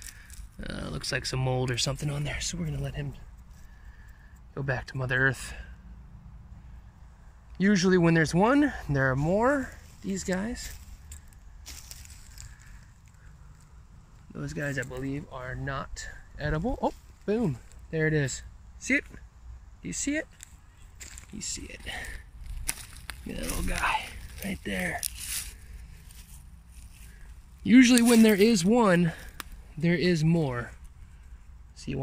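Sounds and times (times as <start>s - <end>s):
twigs snapping: 0.0s - 0.6s, 10.3s - 14.9s, 20.3s - 29.7s
dry leaves crackling underfoot: 0.0s - 1.1s, 9.6s - 15.3s, 20.3s - 31.6s.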